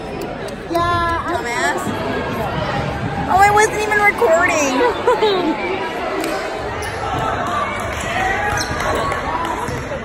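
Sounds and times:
spectators chattering in gymnasium: 0.0 - 10.0.

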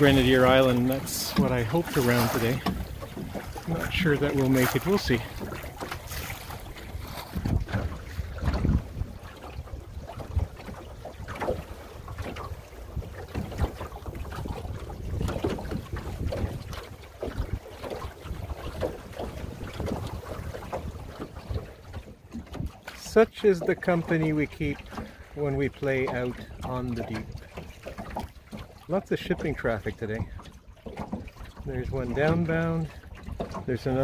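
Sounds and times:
wind rumbling on microphone: 0.0 - 22.8
water sloshing along hull: 0.0 - 34.0.

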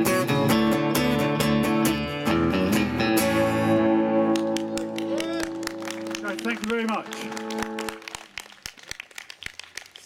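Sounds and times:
audience clapping: 4.2 - 10.0.

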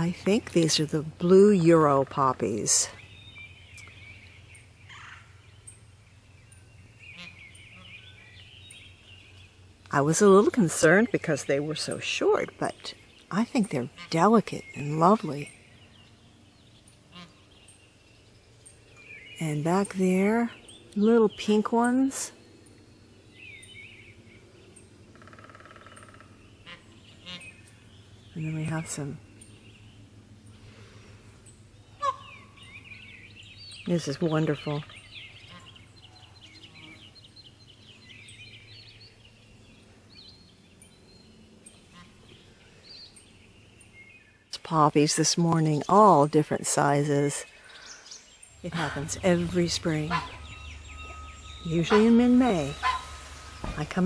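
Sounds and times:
faint bird calls: 2.9 - 9.6, 12.8 - 21.0, 22.3 - 44.6, 47.4 - 54.0
distant rattling fowl call: 32.0 - 32.6, 48.6 - 54.0
high bird chirps: 47.4 - 54.0.

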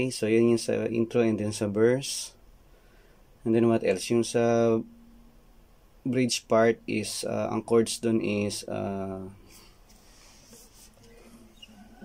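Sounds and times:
faint handling noise: 9.5 - 12.0.

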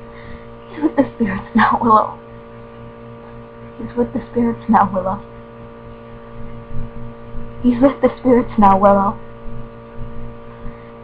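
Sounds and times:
electrical mains hum: 0.0 - 11.0
person speaking: 0.7 - 2.2, 3.8 - 5.2, 7.6 - 9.2.

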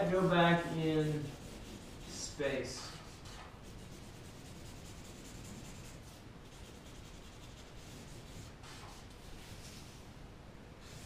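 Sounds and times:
marker scratching on paper: 0.2 - 10.0.

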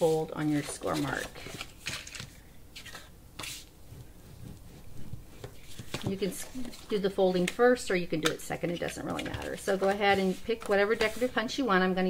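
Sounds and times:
paper rustles and swipes: 0.0 - 7.0, 9.2 - 11.6.

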